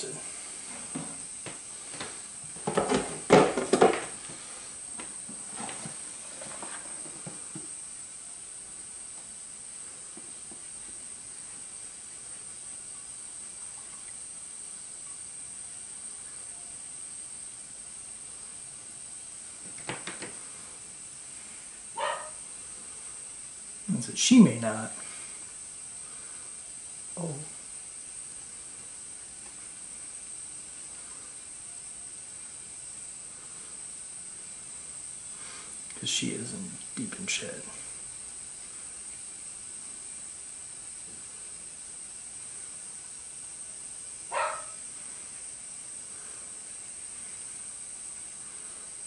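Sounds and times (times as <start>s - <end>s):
faint hiss with high tone: 0.0s - 49.0s
plastic tub knocks and rattles: 2.6s - 4.1s.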